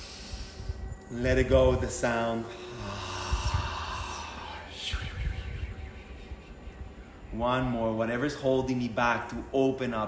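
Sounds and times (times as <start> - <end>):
long breathy exhale: 0.0 - 0.9, 2.5 - 5.5
soft background music: 0.0 - 10.0.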